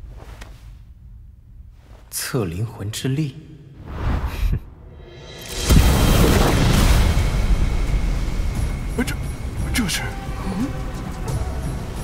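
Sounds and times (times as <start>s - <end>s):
background music: 4.8s - 12.0s
loud boom with rumble: 5.5s - 9.6s.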